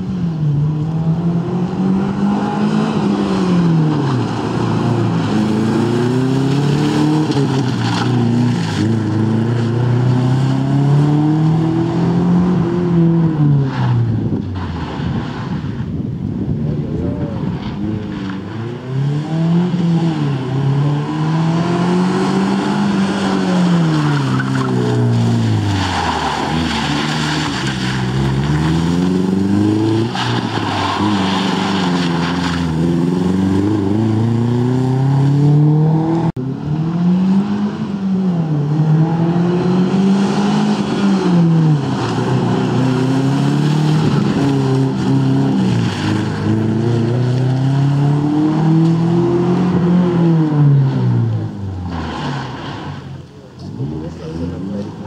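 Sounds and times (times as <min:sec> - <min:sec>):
rally car engine revving: 0:00.0 - 0:55.0.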